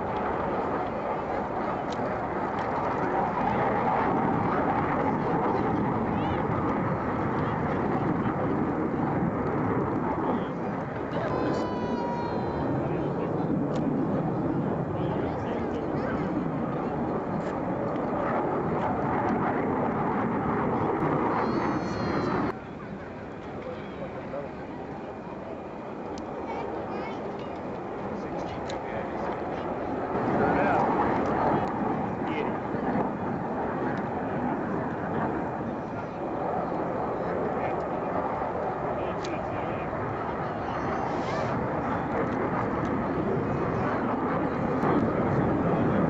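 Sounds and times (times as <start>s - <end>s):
jet engine passing low: 0.0s - 46.0s.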